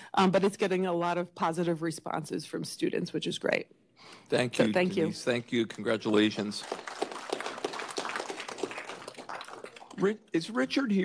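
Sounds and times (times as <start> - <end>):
people applauding: 4.6 - 10.2.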